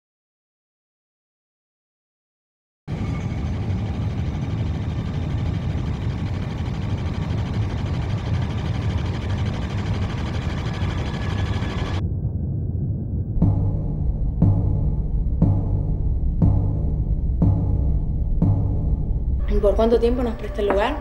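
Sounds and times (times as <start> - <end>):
low rumbling drone: 2.9 - 21.0.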